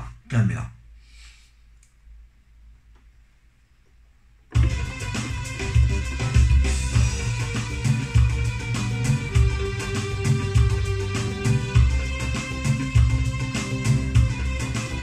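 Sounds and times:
keyboard melody with drum beat: 4.5 - 15.0.

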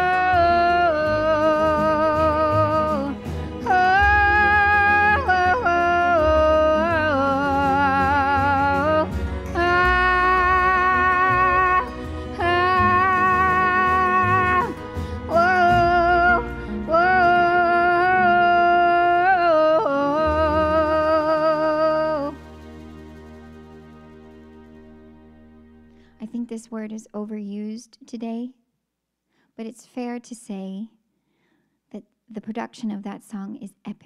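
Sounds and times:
woman singing with vibrato: 0.0 - 22.5
low accompaniment: 0.0 - 26.5.

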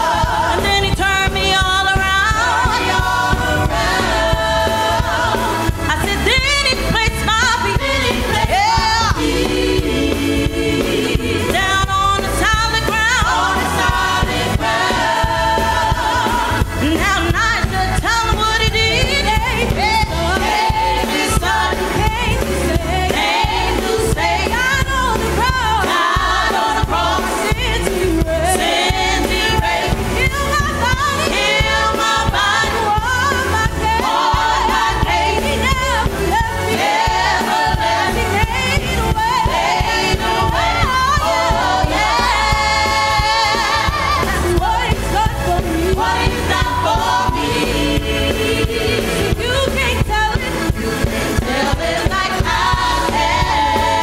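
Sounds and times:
choir singing in harmony: 0.0 - 54.0
keyboard accompaniment: 0.0 - 54.0.

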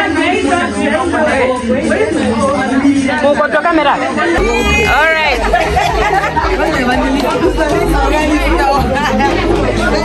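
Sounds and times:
music playing: 0.0 - 10.0
women chattering and laughing: 0.0 - 10.0.

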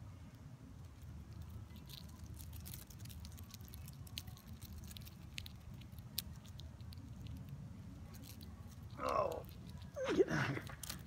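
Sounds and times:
low steady rumble: 0.0 - 11.0
small clicks and crackles: 0.8 - 10.0, 10.6 - 11.0.

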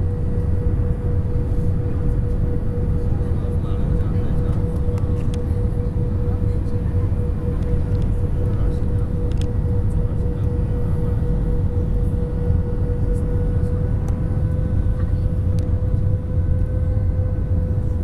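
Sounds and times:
low rumble of engines and airflow: 0.0 - 18.0.

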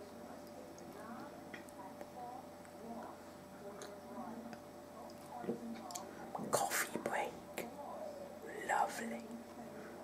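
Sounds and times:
person whispering: 6.4 - 7.4, 8.5 - 9.4.

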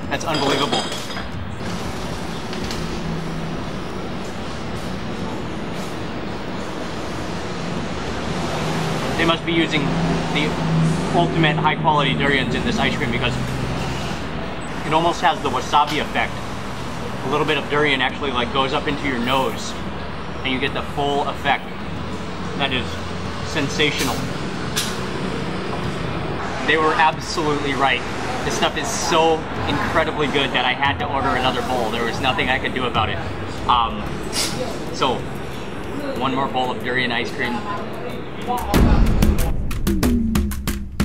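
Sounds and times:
street traffic engine rumble: 0.0 - 38.9.

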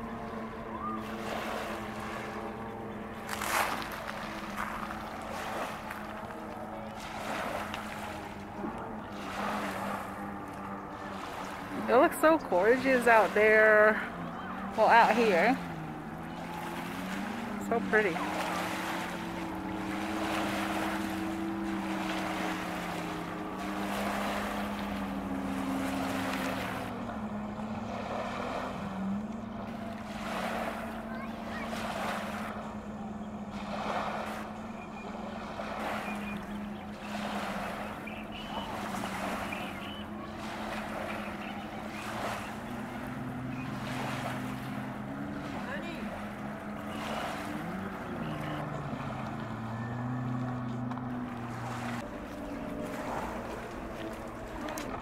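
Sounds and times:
distant personal watercraft engine: 0.0 - 55.0
small waves washing over ramp: 0.0 - 55.0.

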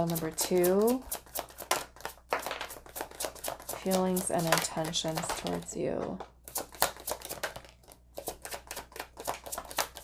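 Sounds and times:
cards being shuffled: 0.0 - 10.0.

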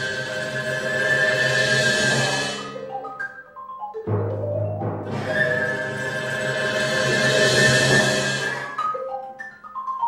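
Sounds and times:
chamber ensemble playing: 0.0 - 10.0.

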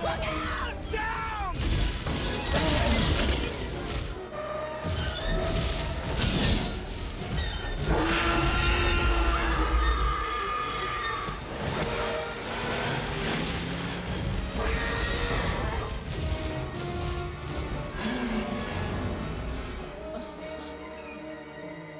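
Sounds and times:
dramatic orchestral film score: 0.0 - 21.9.

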